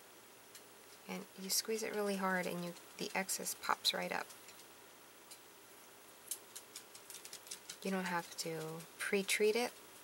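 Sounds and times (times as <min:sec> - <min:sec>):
woman speaking: 0:01.1 - 0:04.3, 0:07.8 - 0:09.8.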